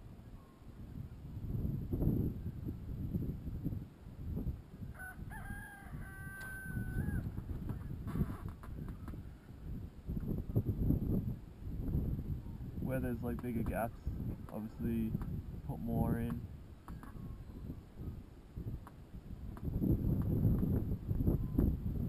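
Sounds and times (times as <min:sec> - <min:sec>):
wind rumble on microphone: 0:00.0 - 0:22.0
rooster crowing: 0:04.9 - 0:07.3.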